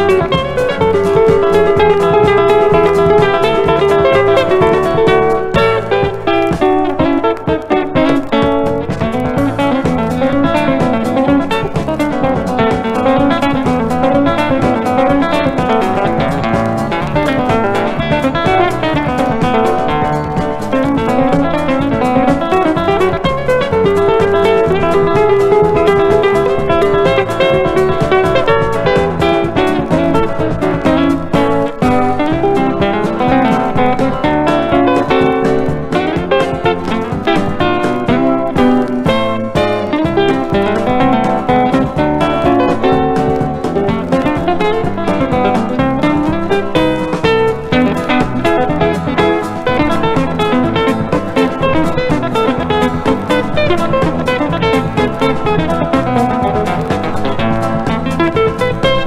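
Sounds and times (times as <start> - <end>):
country guitar instrumental: 0.0 - 59.0.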